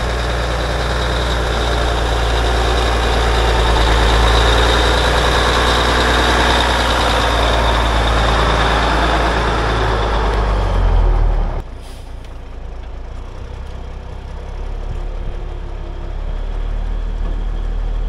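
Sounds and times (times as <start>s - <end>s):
truck engine passing: 0.0s - 18.0s.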